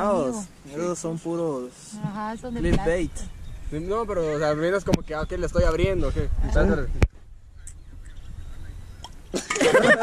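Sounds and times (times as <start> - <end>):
wind rumble on microphone: 2.1 - 9.3.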